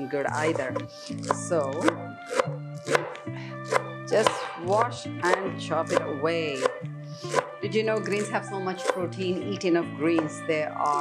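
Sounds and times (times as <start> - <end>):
background music with low tones: 0.0 - 11.0
knife chopping on wooden board: 0.7 - 9.2.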